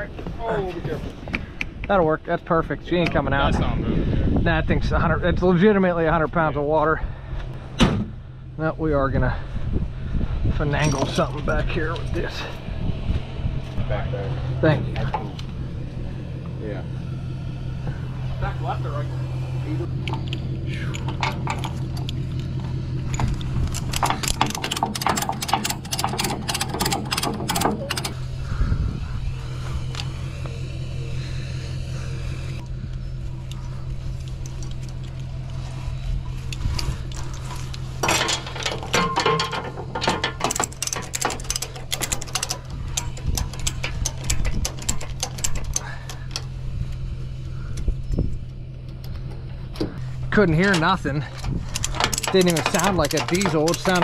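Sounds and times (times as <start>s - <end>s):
steady low hum: 0.0s - 54.0s
ratchet strap pawl clicking: 40.4s - 47.0s.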